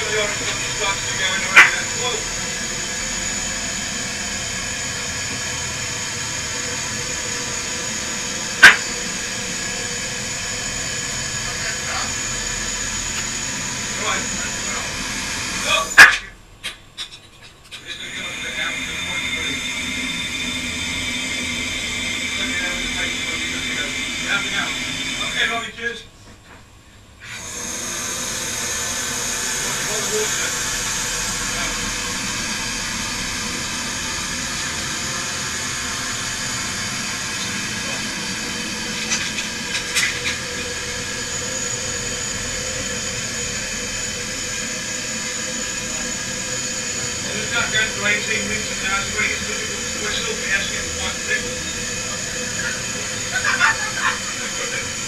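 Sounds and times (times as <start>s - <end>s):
air hissing in a chamber: 0.0s - 16.3s, 17.8s - 25.9s, 27.2s - 55.0s.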